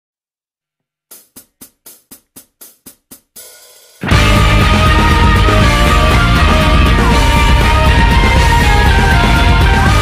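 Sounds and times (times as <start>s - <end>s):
hi-hat hits: 1.1s - 6.1s.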